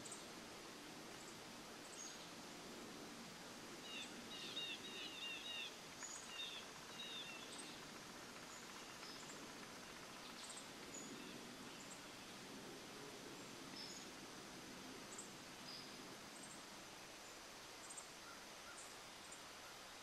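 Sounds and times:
outdoor background noise: 0.0s - 20.0s
songbird chirping: 3.8s - 12.5s.

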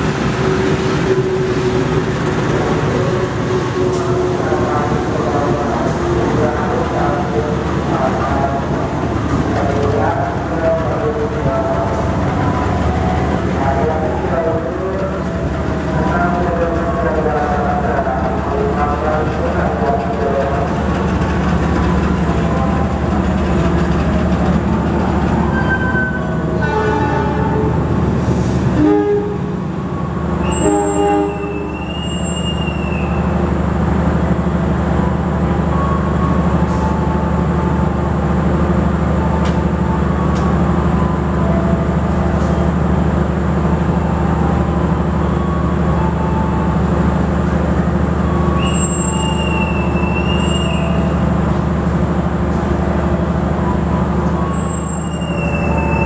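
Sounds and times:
diesel train engine humming: 0.0s - 56.0s
shrill whistle blasts: 48.6s - 51.0s.

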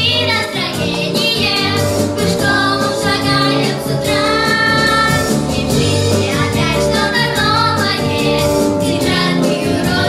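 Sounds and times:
girls singing together: 0.0s - 10.0s
musical accompaniment: 0.0s - 10.0s.

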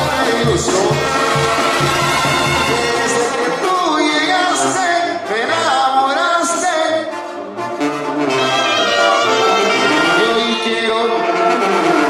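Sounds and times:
drums: 0.0s - 4.7s
man singing: 0.0s - 7.2s, 8.3s - 12.0s
brass band music: 0.0s - 12.0s.

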